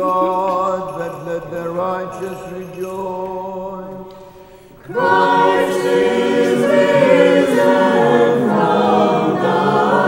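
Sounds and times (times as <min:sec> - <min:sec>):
choir chanting over a drone: 0:04.9 - 0:10.0.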